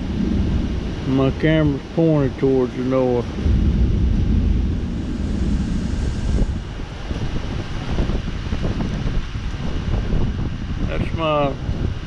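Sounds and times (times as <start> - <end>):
rain: 0.0 - 12.0
wind: 0.0 - 12.0
wind gusts buffeting microphone: 0.0 - 12.0.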